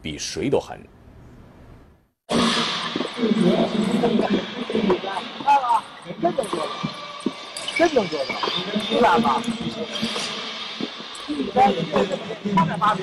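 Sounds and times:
din of overlapping voices: 0:02.3 - 0:13.0.

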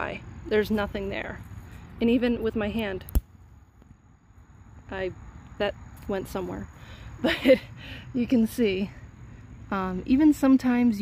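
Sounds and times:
dry stalk snapping: 0:03.0 - 0:03.9.

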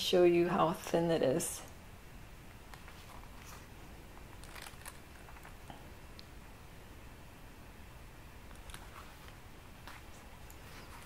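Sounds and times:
light clicks and rustles: 0:02.7 - 0:06.3, 0:08.5 - 0:11.0
leather card holder handling: 0:04.4 - 0:05.6.

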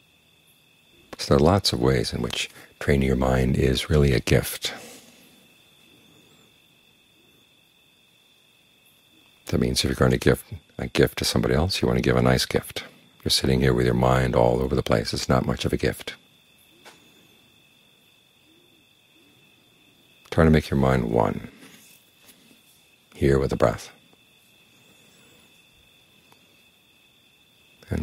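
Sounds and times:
crickets trilling: 0:00.0 - 0:28.0
faint high-pitched tone: 0:08.1 - 0:28.0.

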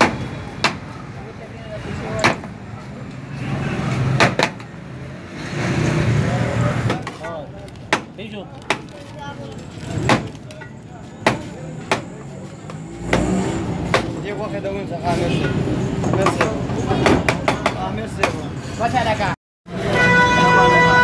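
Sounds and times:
street traffic: 0:00.0 - 0:21.0.

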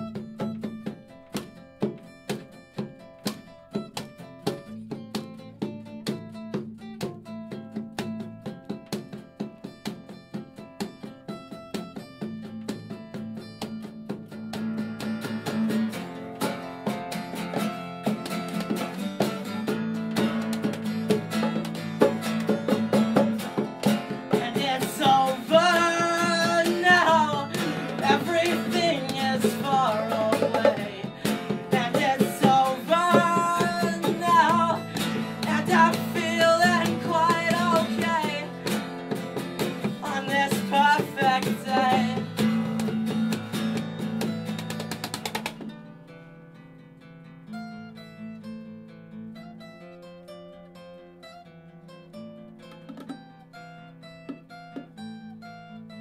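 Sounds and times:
bongos played by hand: 0:00.0 - 0:45.8, 0:52.5 - 0:56.0
acoustic guitars strummed: 0:00.0 - 0:56.0
man singing: 0:24.3 - 0:38.7, 0:39.9 - 0:42.5.

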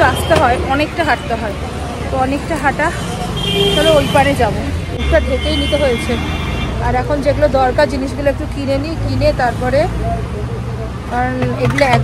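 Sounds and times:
woman talking: 0:00.0 - 0:03.1, 0:03.8 - 0:06.2, 0:06.8 - 0:10.0, 0:11.1 - 0:12.0
passing vehicles engine rumble: 0:00.0 - 0:12.0.

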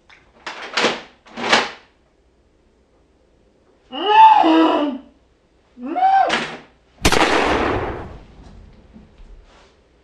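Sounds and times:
person calling out: 0:03.9 - 0:05.1, 0:05.8 - 0:06.4
loud bang: 0:07.0 - 0:08.4.

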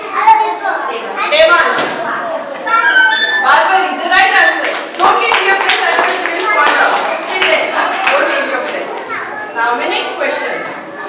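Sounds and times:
children's voices: 0:00.0 - 0:11.0
children clapping: 0:04.5 - 0:09.2.

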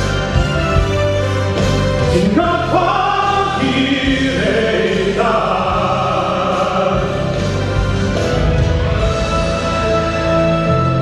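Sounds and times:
instrumental accompaniment: 0:00.0 - 0:11.0
man singing: 0:02.1 - 0:07.5.

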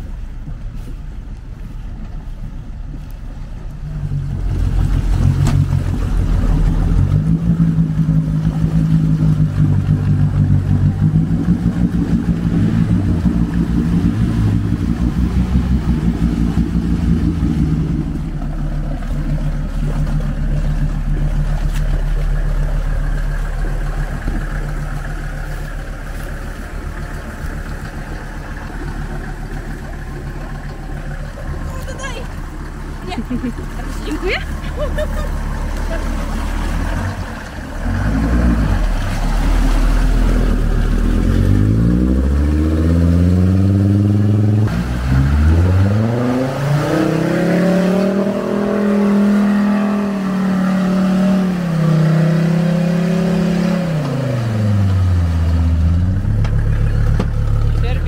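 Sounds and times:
off-road vehicle engine revving: 0:00.0 - 0:58.0.

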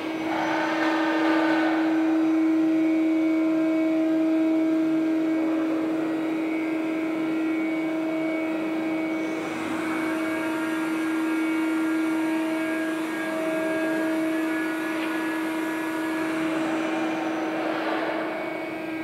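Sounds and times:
rush of noise: 0:00.0 - 0:02.7
steady mechanical hum: 0:00.0 - 0:19.0.

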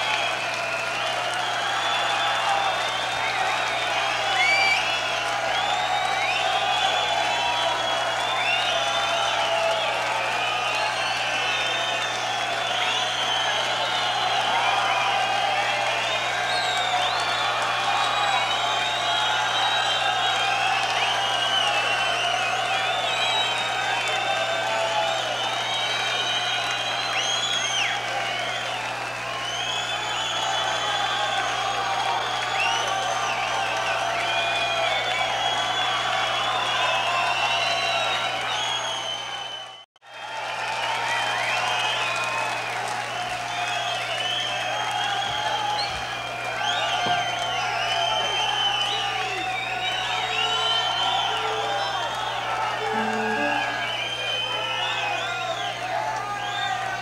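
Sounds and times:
shrill whistles: 0:00.0 - 0:39.8, 0:41.1 - 0:57.0
audience cheering and whooping: 0:00.0 - 0:57.0.

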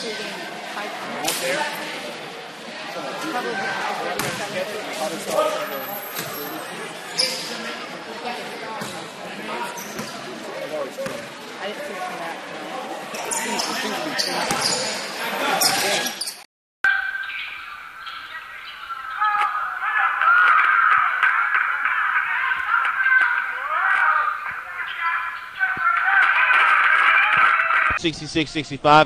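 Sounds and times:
voices: 0:00.0 - 0:29.0
basketball bouncing on court: 0:04.2 - 0:04.6, 0:14.4 - 0:14.8.

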